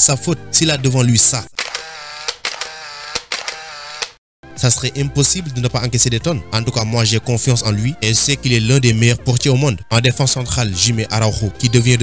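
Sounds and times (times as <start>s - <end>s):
camera shutter clicks: 1.6s - 4.2s.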